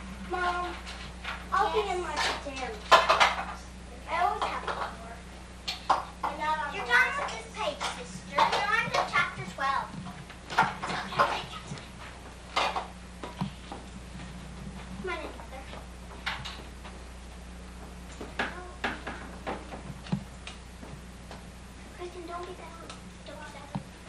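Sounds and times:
low electrical hum: 0:00.0 - 0:24.0
children chattering and calling: 0:06.2 - 0:10.0, 0:10.8 - 0:11.8.

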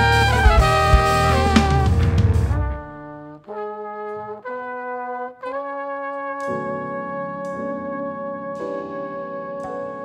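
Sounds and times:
jazz quintet playing: 0:00.0 - 0:10.0
trumpet and trombone sustained notes: 0:00.0 - 0:10.0.

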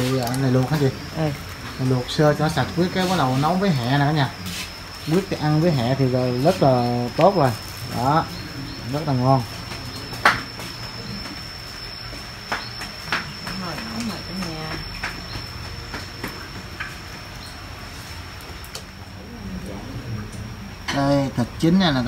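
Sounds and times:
high-pitched whine: 0:00.0 - 0:22.0.

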